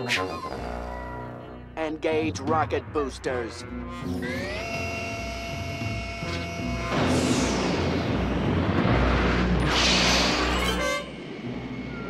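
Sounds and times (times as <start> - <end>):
cartoon rocket booster whoosh: 6.6 - 8.2.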